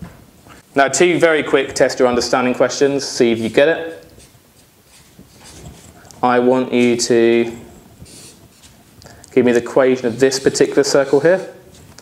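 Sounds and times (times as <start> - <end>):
marker drawing on paper: 3.4 - 6.1, 8.0 - 8.8, 9.4 - 11.8.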